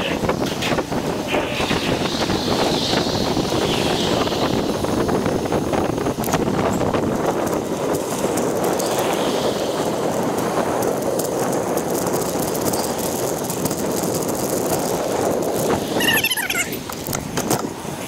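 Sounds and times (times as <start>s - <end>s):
bicycle tyre rolling over grass: 0.0s - 18.0s
bike rattling: 0.0s - 18.0s
wind on microphone: 0.0s - 18.0s
brief high squeaks: 16.0s - 16.8s.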